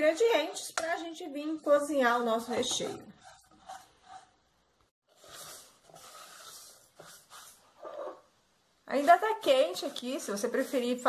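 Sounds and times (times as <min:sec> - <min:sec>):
spatula stirring in a pan: 0:00.0 - 0:11.0.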